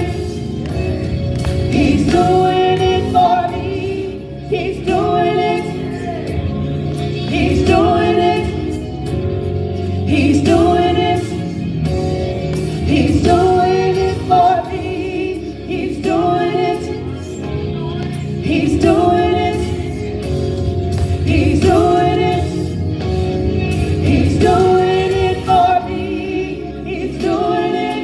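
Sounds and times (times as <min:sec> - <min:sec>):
women singing gospel: 0:00.0 - 0:28.0.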